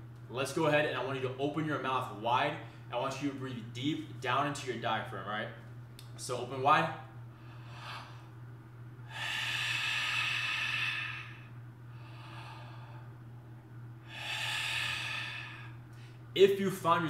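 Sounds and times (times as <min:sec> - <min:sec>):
man breathing deeply through mouth: 0:07.3 - 0:08.4, 0:09.0 - 0:13.2, 0:14.0 - 0:16.3.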